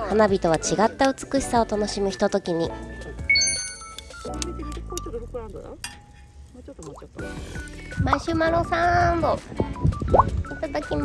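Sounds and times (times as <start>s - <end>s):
charcoal fire crackling: 0.0s - 11.0s
fire pop: 3.8s - 8.6s, 10.0s - 10.4s.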